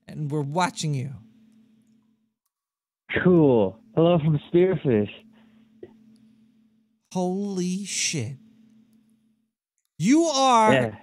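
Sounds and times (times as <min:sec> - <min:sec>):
faint low hum: 0:03.1 - 0:11.0
man speaking: 0:07.1 - 0:08.4, 0:10.0 - 0:11.0.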